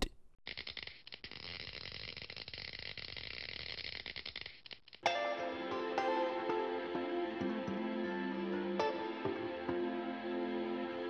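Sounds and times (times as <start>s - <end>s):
crackling buzz of sparks: 0.0s - 5.1s.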